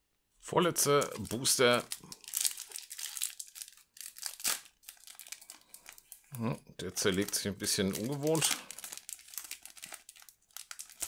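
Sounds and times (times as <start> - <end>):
foil wrapper crinkling: 0.9 - 6.2, 6.9 - 11.0.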